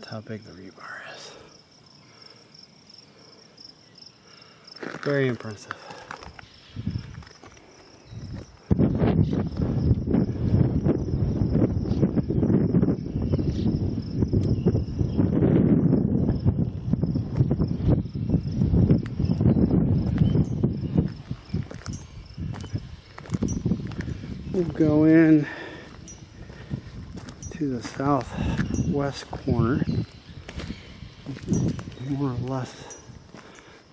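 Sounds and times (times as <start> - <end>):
high insect trill: 0.0 - 33.9
wind buffeting microphone: 6.2 - 33.8.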